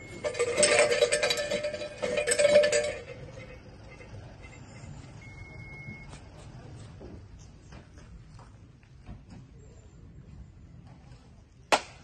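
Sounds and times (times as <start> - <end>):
shrine bell jangling: 0.0 - 3.6.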